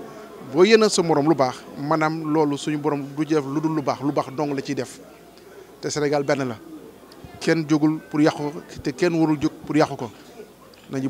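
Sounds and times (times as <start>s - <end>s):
man speaking: 0.4s - 5.0s, 5.8s - 6.6s, 7.4s - 10.2s.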